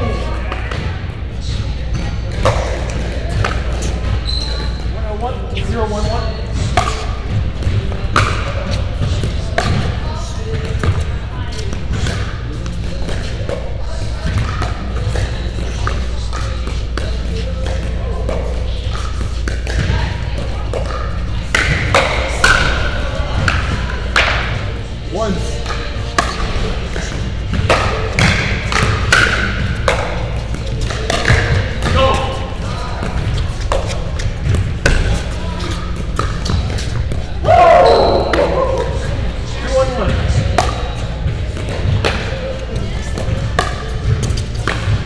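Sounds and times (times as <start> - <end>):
ball bouncing on court: 0.1 - 4.9, 5.6 - 24.7, 25.5 - 45.0
paddles striking plastic ball: 25.6 - 37.4.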